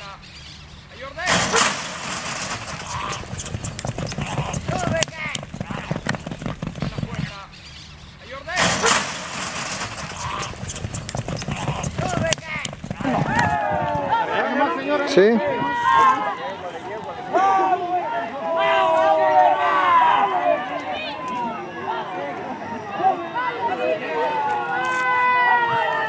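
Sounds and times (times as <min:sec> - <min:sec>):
people shouting: 0:01.1 - 0:05.9, 0:08.5 - 0:10.6, 0:11.4 - 0:16.4, 0:17.3 - 0:26.0
starting gate bang: 0:01.2 - 0:07.2, 0:08.5 - 0:13.6
hooves galloping on dirt: 0:01.3 - 0:07.7, 0:08.6 - 0:14.5.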